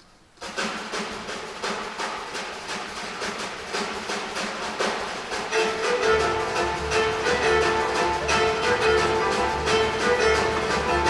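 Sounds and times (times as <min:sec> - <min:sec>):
jazz drum kit groove: 0:00.4 - 0:11.0
pitched instruments: 0:04.8 - 0:11.0.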